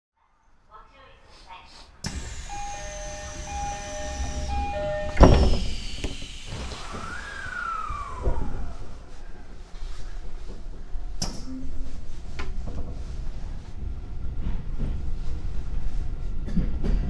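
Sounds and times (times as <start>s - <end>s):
train doors shutting thud: 2.0s - 9.3s
train traction motors whining: 2.0s - 11.2s
two-tone train door chime: 2.1s - 7.2s.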